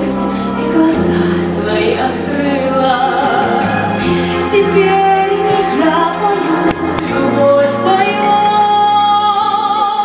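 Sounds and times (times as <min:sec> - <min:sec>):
woman singing with accompaniment: 0:00.0 - 0:10.0.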